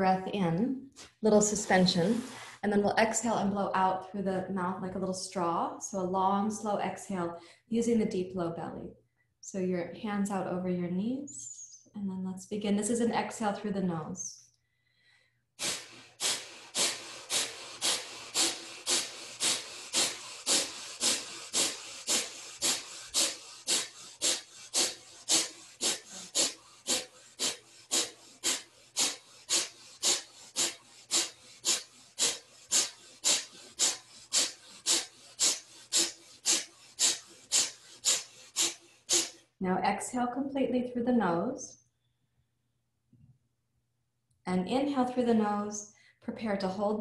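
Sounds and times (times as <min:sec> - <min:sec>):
woman exhaling forcefully through nose: 0:15.6 - 0:39.5.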